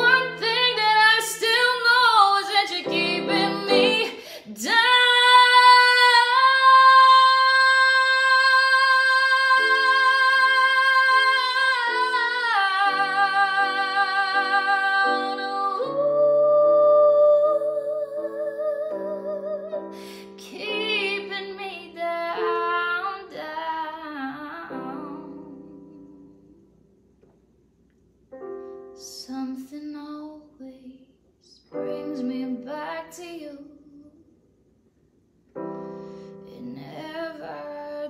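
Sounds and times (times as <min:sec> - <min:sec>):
woman singing a ballad: 0:00.0 - 0:26.5, 0:29.0 - 0:34.2, 0:35.7 - 0:38.0
digital piano chords: 0:00.0 - 0:26.9, 0:28.3 - 0:30.0, 0:31.7 - 0:33.5, 0:35.5 - 0:38.0.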